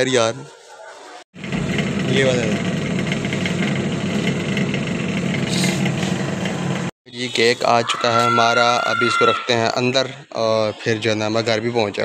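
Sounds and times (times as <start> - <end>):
small motorcycle engine running: 1.4 - 6.9.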